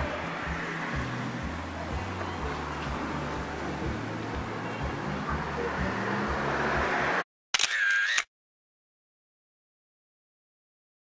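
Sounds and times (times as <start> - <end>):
street background noise: 0.0 - 8.2
camera shutter sound effect: 7.6 - 8.3.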